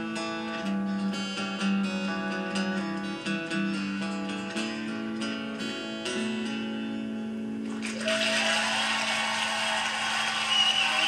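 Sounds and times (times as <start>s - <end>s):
studio audience applause: 7.7s - 11.0s.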